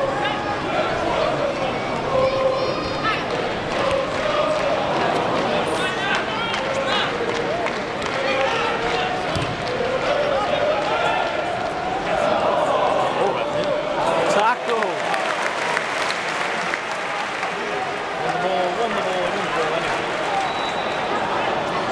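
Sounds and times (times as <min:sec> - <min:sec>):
stadium crowd voices: 0:00.0 - 0:21.9.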